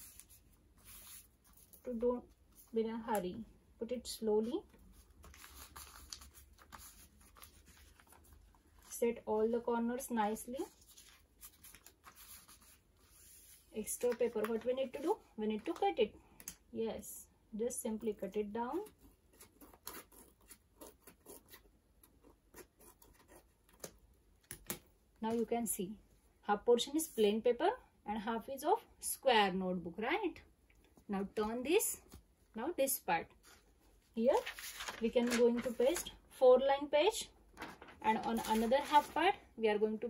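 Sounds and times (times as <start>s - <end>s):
paper rustling: 0.0s - 2.8s, 4.7s - 9.0s, 10.4s - 16.5s, 33.4s - 36.2s, 37.5s - 39.4s.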